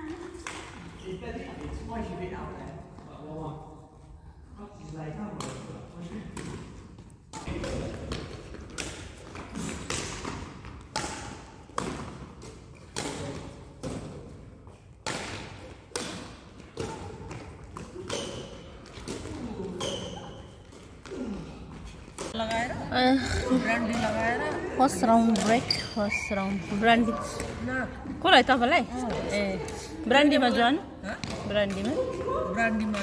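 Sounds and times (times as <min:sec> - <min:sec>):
racquet hitting shuttlecock: 0:06.3 - 0:21.2
players talking: 0:22.3 - 0:33.0.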